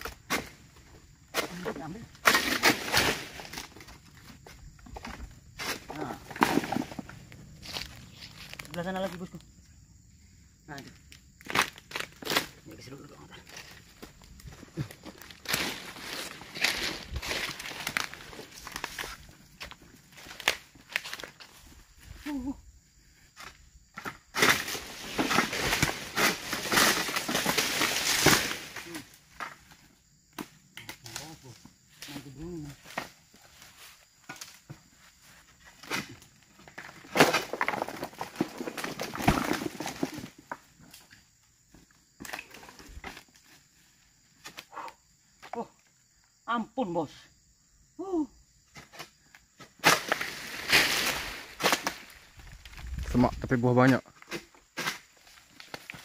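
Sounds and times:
dry fronds crackling underfoot: 5.6 - 9.3, 11.4 - 22.5, 24.4 - 29.2, 49.8 - 54.0, 54.9 - 56.0.

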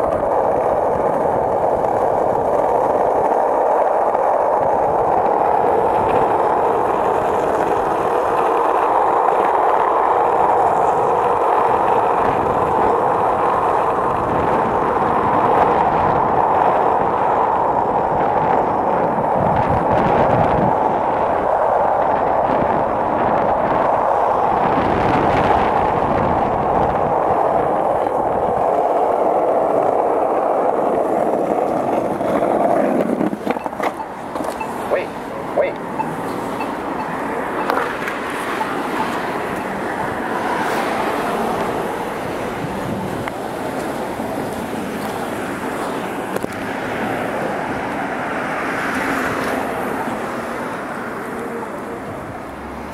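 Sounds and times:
skateboard clicks and knocks: 0.0 - 52.9
skateboard wheels rolling on asphalt: 0.0 - 52.9
street noise: 0.0 - 52.9.

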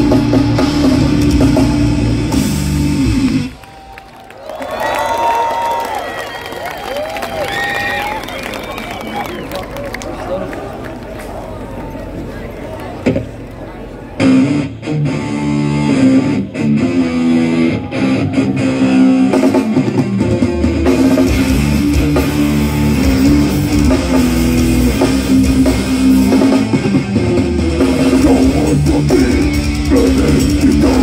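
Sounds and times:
bass guitar: 0.0 - 3.6, 14.2 - 31.0
heavy drums: 0.0 - 3.6, 14.2 - 31.0
electric guitar riffing: 14.2 - 31.0.

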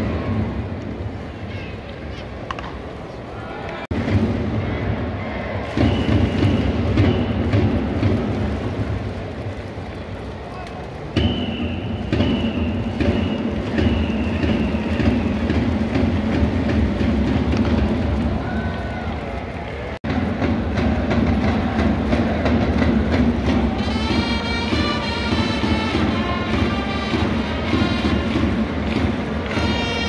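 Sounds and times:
cheering squad drumming: 3.9 - 9.2, 11.1 - 30.0
crowd cheering: 4.6 - 30.0
trumpets playing a tune: 23.8 - 28.5, 29.5 - 30.0.

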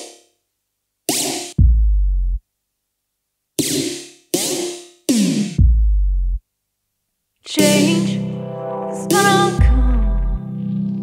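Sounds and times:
bright electronic stabs: 7.6 - 11.0.

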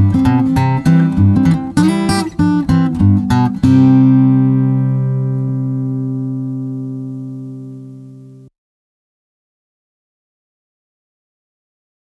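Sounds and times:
acoustic guitar plucked notes: 0.0 - 8.5
guitar chord ringing: 0.0 - 8.5.

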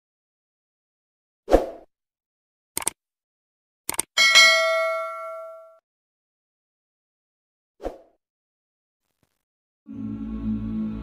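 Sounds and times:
notification bell dings: 4.2 - 5.8.

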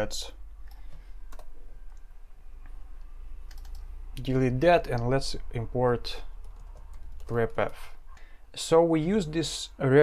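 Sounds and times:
computer keyboard key presses: 3.5 - 3.8.

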